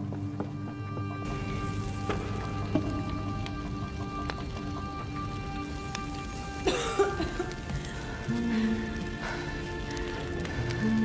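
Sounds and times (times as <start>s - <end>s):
fire crackling: 0.0s - 11.0s
sustained film music: 0.0s - 11.0s.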